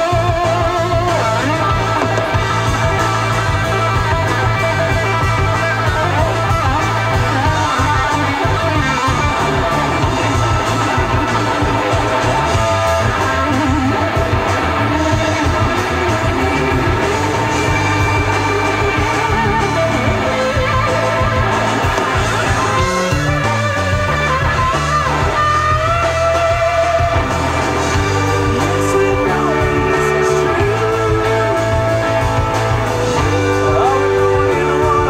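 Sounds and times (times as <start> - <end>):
bass guitar: 0.0 - 35.0
drums: 0.0 - 35.0
electric guitar bending notes: 0.0 - 35.0.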